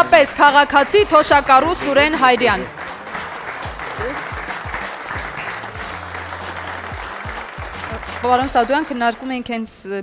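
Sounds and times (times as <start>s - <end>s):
applause: 0.0s - 9.5s
background music with bass beat: 1.0s - 8.6s.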